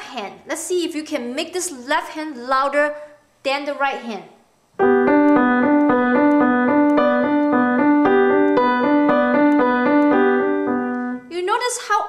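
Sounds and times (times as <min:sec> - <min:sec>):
grand piano playing: 0:04.8 - 0:11.3.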